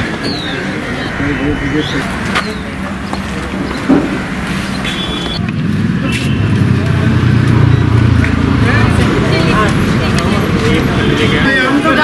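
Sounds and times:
background voices: 0.0s - 4.5s
loud low rumble: 0.4s - 4.9s.

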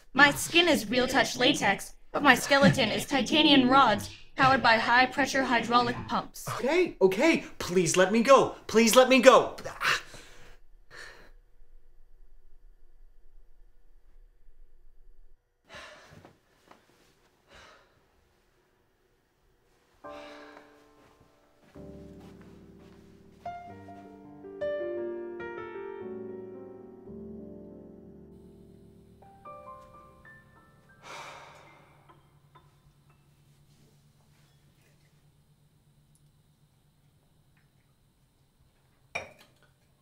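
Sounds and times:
low steady hum: 28.1s - 40.0s
man exhaling: 31.0s - 32.2s
man sighing: 31.0s - 32.2s.

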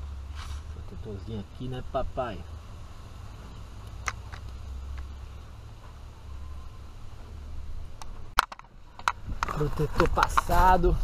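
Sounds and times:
wind rumble on microphone: 7.4s - 11.0s
camera handling clicks and knocks: 8.4s - 10.5s.

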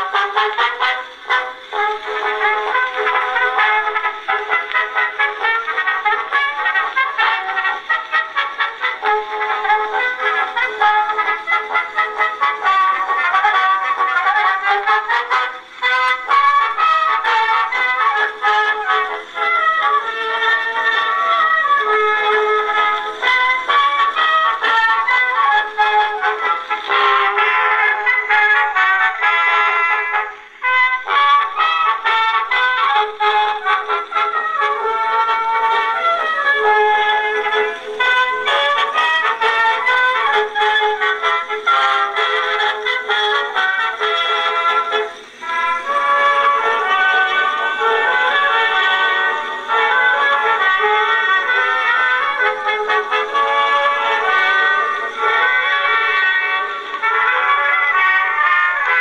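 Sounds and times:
phonograph playing instrumental record: 0.0s - 59.0s.

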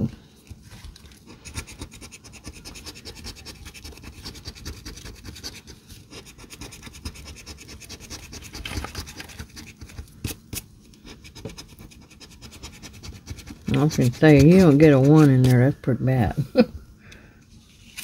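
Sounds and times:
coin scratching lottery ticket: 1.3s - 9.9s, 11.1s - 15.8s.

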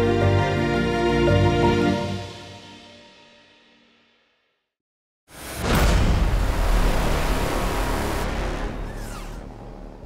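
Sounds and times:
deep rumbling rush of noise: 5.4s - 8.9s.

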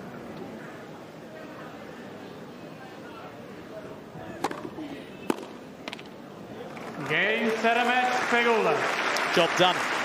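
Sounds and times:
crowd background: 0.0s - 10.0s.

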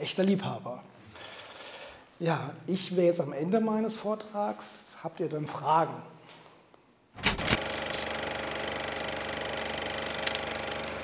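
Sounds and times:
film projector clatter: 7.2s - 11.0s.

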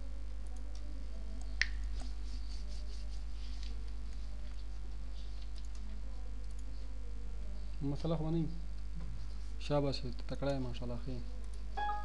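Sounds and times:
computer mouse clicks: 5.4s - 6.7s.

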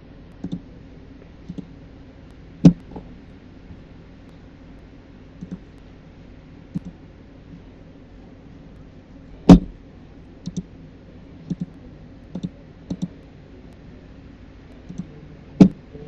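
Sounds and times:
low steady hum: 0.0s - 16.0s
computer mouse clicks: 0.4s - 0.6s, 1.5s - 1.7s, 5.4s - 5.9s, 6.7s - 7.0s, 10.4s - 10.7s, 11.5s - 13.2s, 14.7s - 15.8s
loud knock: 9.5s - 9.8s.

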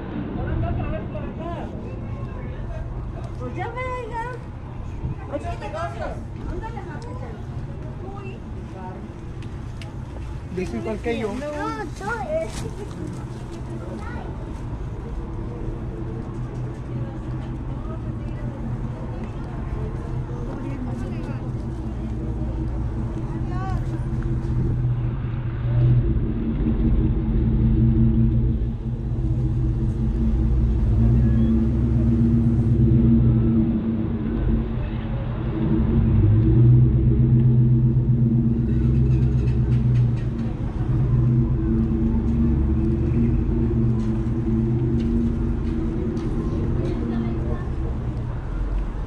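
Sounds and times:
people's voices: 0.0s - 49.0s
vehicle engine drone: 0.0s - 49.0s.

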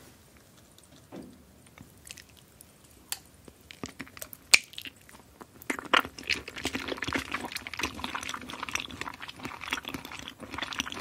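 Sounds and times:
wet smacking clicks: 3.1s - 7.9s
mouth biting and sucking jelly: 3.5s - 11.0s.

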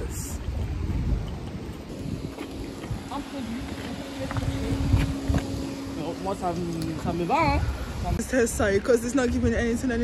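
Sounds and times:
low steady hum: 0.0s - 8.7s
street noise: 0.0s - 10.0s
wind rumbling on microphone: 0.0s - 10.0s.

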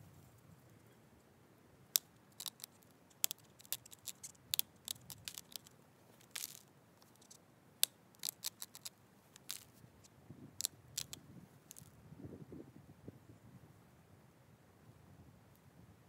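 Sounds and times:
stone flaking clicks and snaps: 1.9s - 9.7s, 10.6s - 11.9s.

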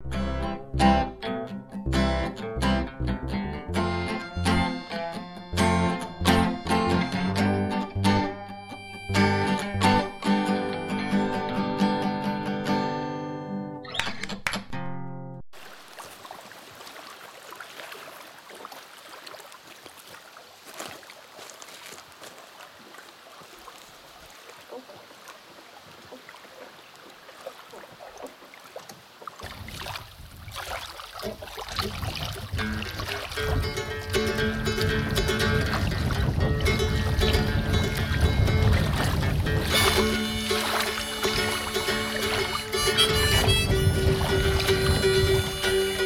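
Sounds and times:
low bass line: 0.0s - 12.2s, 32.5s - 46.0s
plucked acoustic guitar music: 0.0s - 15.4s, 32.5s - 46.0s.

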